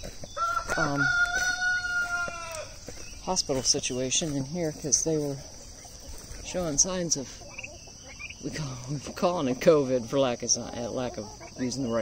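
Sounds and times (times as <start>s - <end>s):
rooster crowing: 0.3s - 2.8s.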